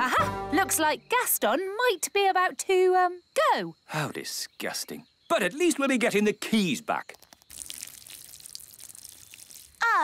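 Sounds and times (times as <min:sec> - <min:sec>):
hissing trickle: 0:07.2 - 0:10.0.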